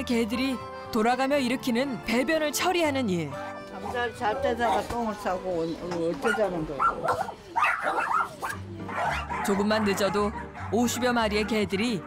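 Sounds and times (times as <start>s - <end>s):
small dogs whimpering and yapping: 6.2s - 9.6s.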